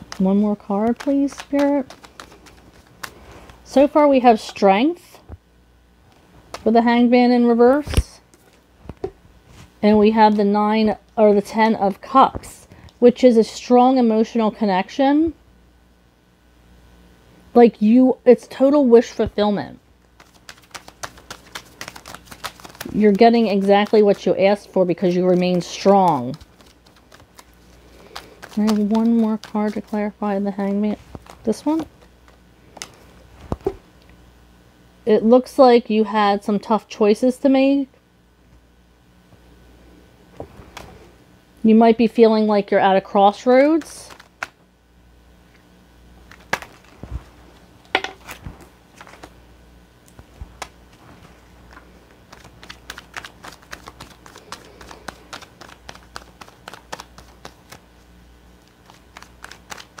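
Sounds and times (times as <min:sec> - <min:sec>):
cards being shuffled: 0:00.0 - 0:04.6, 0:06.1 - 0:06.9, 0:07.6 - 0:12.5, 0:20.1 - 0:33.8, 0:40.3 - 0:41.1, 0:43.3 - 0:44.6, 0:46.2 - 0:49.4, 0:50.0 - 1:00.0.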